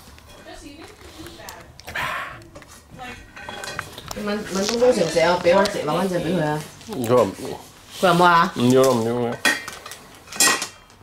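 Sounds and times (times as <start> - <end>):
dishes and cutlery clattering: 3.0 - 4.0, 8.7 - 11.0.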